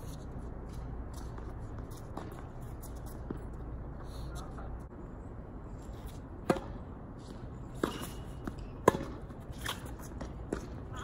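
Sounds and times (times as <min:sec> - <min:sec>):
tennis ball struck by rackets: 0:06.4 - 0:06.8, 0:07.7 - 0:10.8
tennis ball bouncing on court: 0:06.4 - 0:11.0.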